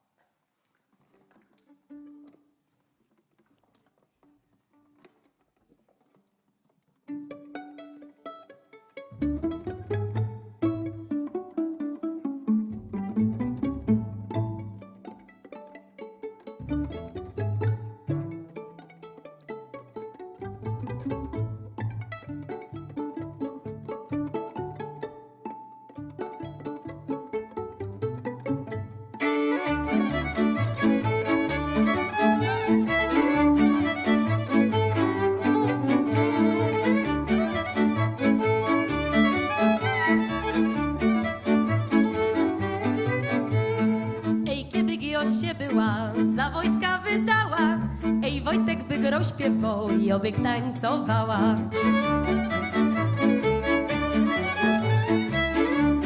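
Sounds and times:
violins playing folk tune: 1.4s - 2.5s, 7.0s - 56.0s
double bass line: 9.2s - 11.3s, 12.5s - 14.9s, 16.6s - 18.6s, 20.4s - 25.1s, 26.1s - 56.0s.

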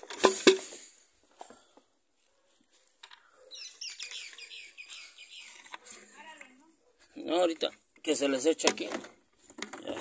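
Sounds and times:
small birds chirping: 3.2s - 6.0s.

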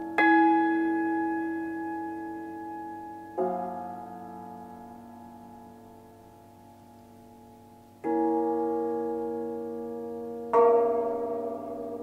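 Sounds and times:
cimbalom chords ringing: 0.0s - 12.0s.

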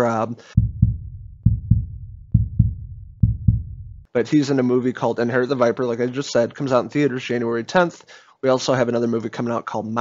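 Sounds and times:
heartbeat thumps: 0.6s - 4.1s.

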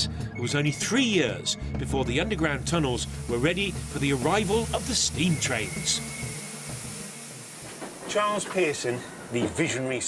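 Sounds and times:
steam locomotive hissing: 2.4s - 10.0s.

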